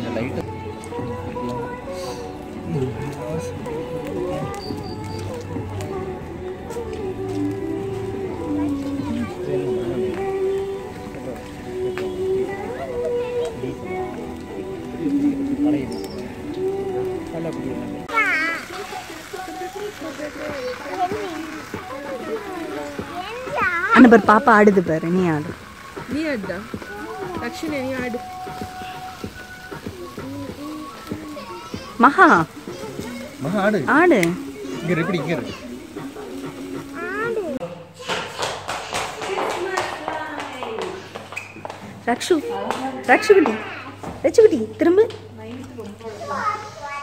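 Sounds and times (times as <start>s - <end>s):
music with singing melody: 0.0s - 37.6s
people talking: 0.0s - 37.6s
child's high wavering voice: 18.1s - 18.8s, 30.6s - 33.4s, 36.9s - 38.2s, 46.2s - 47.0s.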